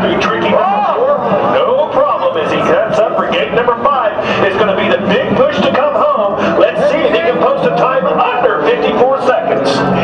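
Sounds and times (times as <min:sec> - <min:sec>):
man talking indistinctly: 0:00.0 - 0:10.0.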